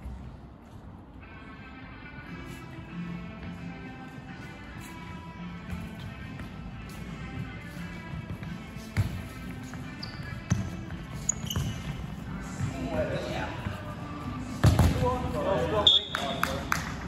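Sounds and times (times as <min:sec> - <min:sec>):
sneaker squeaks: 0:04.7 - 0:12.9.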